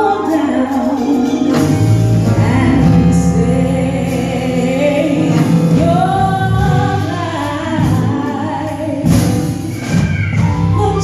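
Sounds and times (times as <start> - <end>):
gospel choir singing: 0.0 - 10.9
low accompaniment: 0.0 - 11.0.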